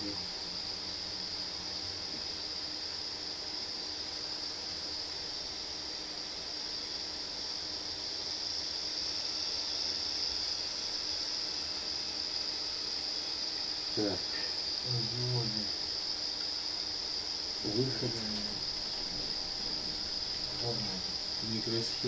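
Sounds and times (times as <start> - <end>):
high-pitched hiss: 0.0 - 22.0
faint low hum: 12.0 - 22.0.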